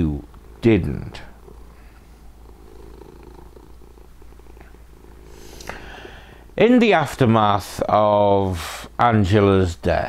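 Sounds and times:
cat purring: 0.0s - 8.6s.

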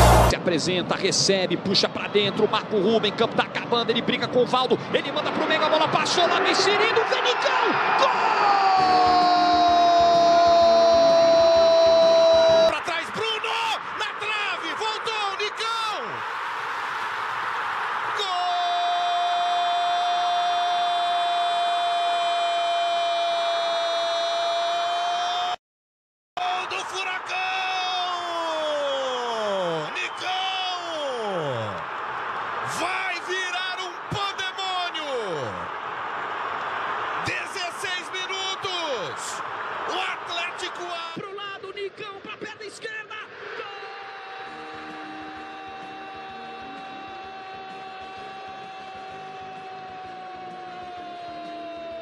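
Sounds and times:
stadium crowd noise: 0.0s - 25.6s, 26.4s - 52.0s
commentators' drawn-out goal cries: 5.3s - 16.2s, 26.4s - 31.8s, 32.6s - 35.7s, 37.2s - 52.0s.

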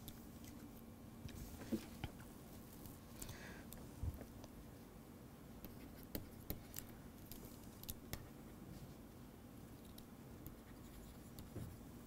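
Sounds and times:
stylus tapping and scratching on screen: 5.6s - 8.9s, 9.7s - 12.0s.

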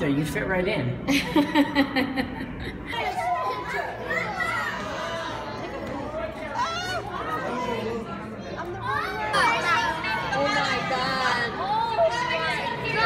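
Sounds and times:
children chattering and calling out: 2.4s - 13.0s.

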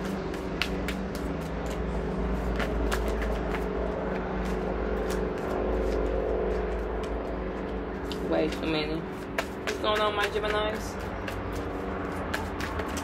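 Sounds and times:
cards being shuffled: 0.0s - 3.7s, 4.4s - 7.2s
low rumbling hum: 0.0s - 13.0s.

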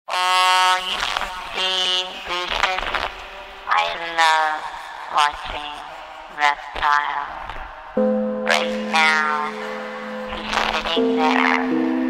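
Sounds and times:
sustained synthetic tone: 7.8s - 12.0s.

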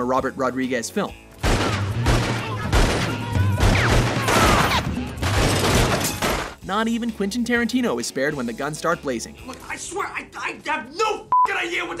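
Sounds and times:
rapid handgun fire: 1.4s - 4.5s.

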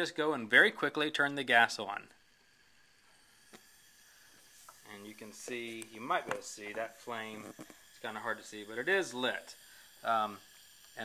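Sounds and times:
gas flame hissing: 0.0s - 11.0s.

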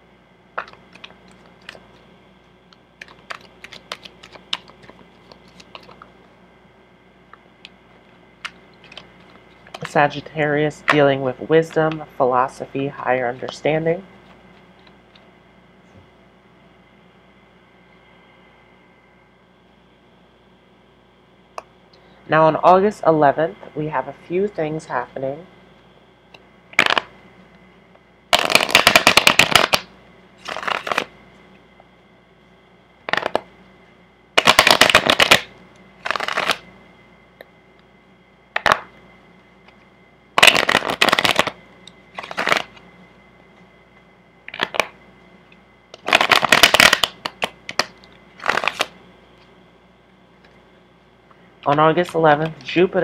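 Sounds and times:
cards being shuffled: 0.6s - 2.1s, 3.0s - 6.2s, 8.4s - 10.0s, 28.4s - 31.1s, 34.4s - 36.6s, 40.4s - 41.6s, 42.2s - 42.8s, 46.0s - 48.9s.

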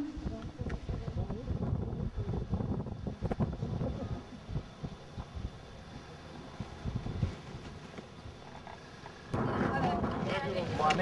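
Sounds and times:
wind buffeting microphone: 0.0s - 8.4s, 9.3s - 11.0s.

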